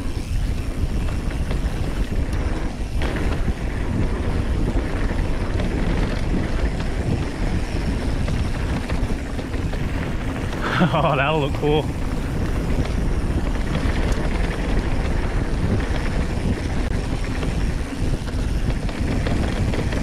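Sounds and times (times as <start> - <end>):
bike rattling over bumps: 0.0 - 20.0
bike tyre noise: 0.0 - 20.0
wind rushing on microphone: 0.0 - 20.0.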